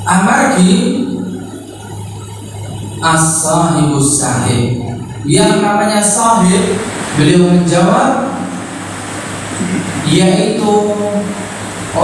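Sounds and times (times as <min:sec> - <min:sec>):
man's amplified speech: 0:00.0 - 0:01.3, 0:03.0 - 0:08.6, 0:09.6 - 0:12.0
room noise: 0:00.0 - 0:12.0
steady low hum: 0:00.0 - 0:12.0.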